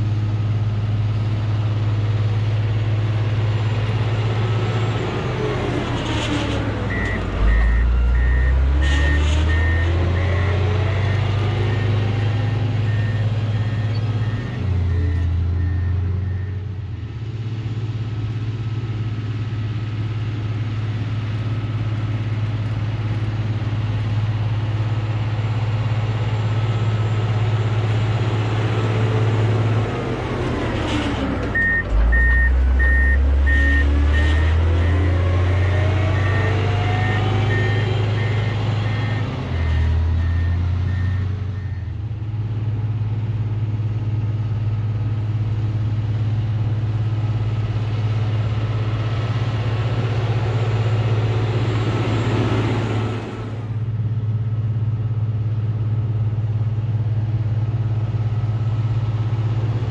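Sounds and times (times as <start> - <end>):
diesel engine running: 0.0 - 59.9
reversing alarm beeping: 6.9 - 16.6, 31.6 - 42.0.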